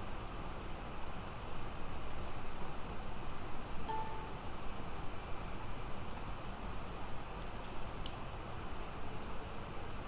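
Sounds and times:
computer mouse clicks: 0.0 - 2.4, 3.0 - 3.6, 6.0 - 6.2, 9.2 - 9.4
short electronic beep: 3.9 - 4.4.

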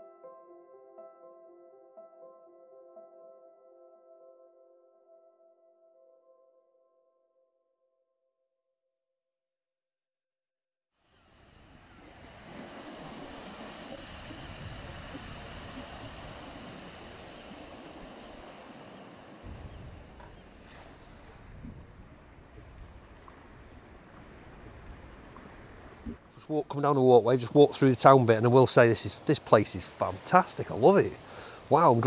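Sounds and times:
surf washing onto sand: 11.1 - 32.0
wind buffeting microphone: 11.6 - 26.3.

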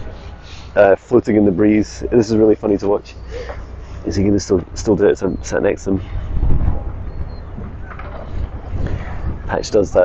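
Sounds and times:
wind buffeting microphone: 1.3 - 10.0.

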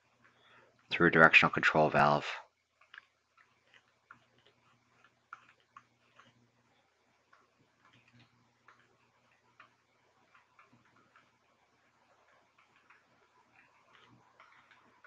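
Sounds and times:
stylus ticking and scratching on screen: 0.0 - 15.0.

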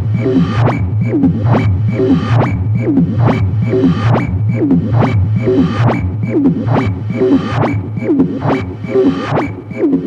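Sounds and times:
techno bass line: 0.0 - 10.0.

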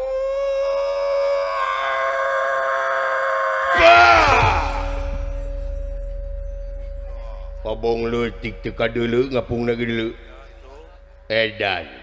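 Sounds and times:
held vocal cry: 0.0 - 5.3
shriek falling in pitch: 0.0 - 12.0
steady sustained tone: 3.8 - 12.0.

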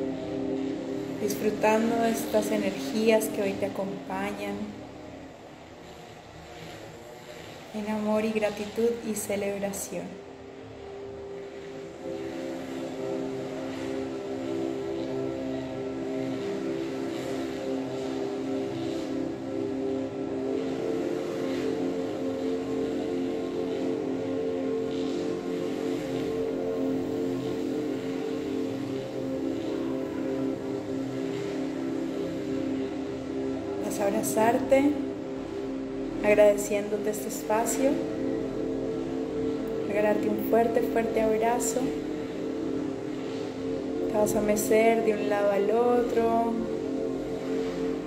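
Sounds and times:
ambient meditation music: 0.0 - 48.0.

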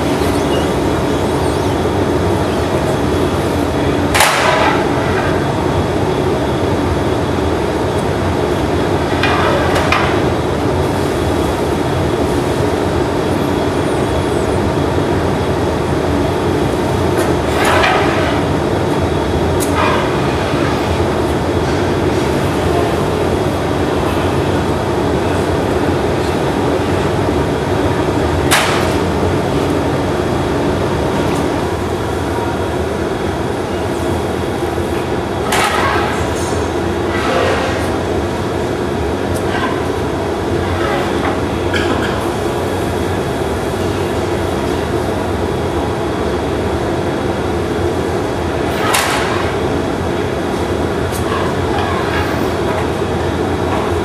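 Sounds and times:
furnace and burners roaring: 0.0 - 54.0.

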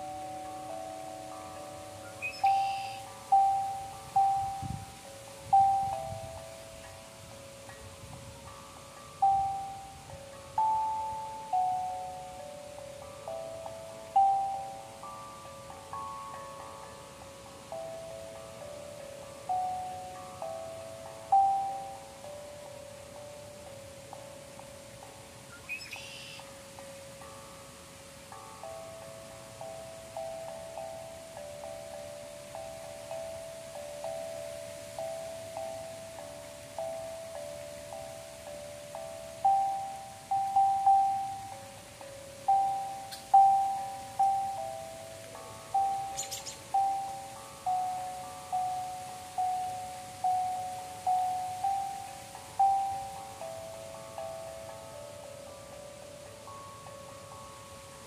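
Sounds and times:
singing bowls ringing: 0.0 - 58.0.

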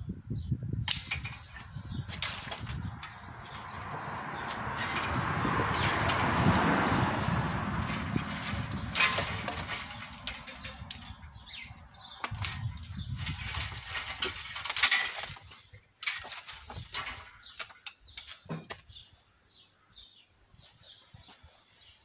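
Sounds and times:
pruning shears snipping: 0.8 - 1.4
canes rustling and clattering: 0.9 - 18.9.

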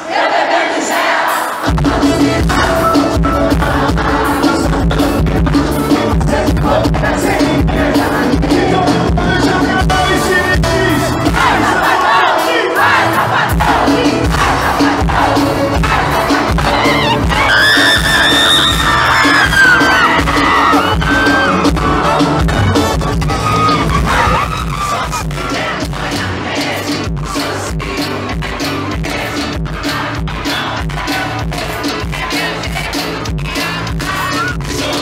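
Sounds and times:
crowd singing and shouting: 0.0 - 35.0
live band music: 1.0 - 35.0.

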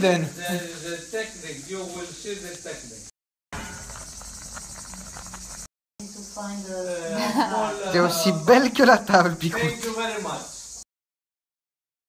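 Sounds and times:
woman speaking: 6.0 - 8.4.

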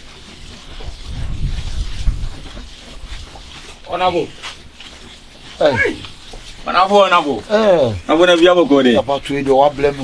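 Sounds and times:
man calling out: 5.6 - 6.1.

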